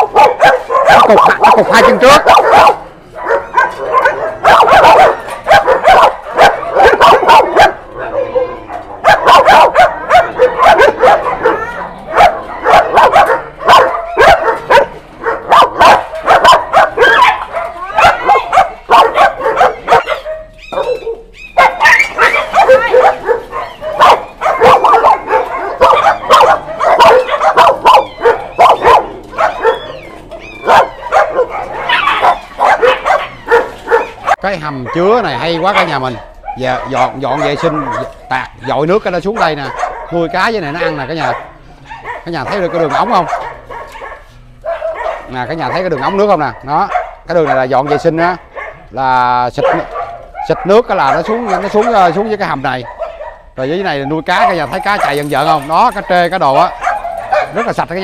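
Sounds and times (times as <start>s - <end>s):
dogs barking and yipping: 0.0s - 58.0s.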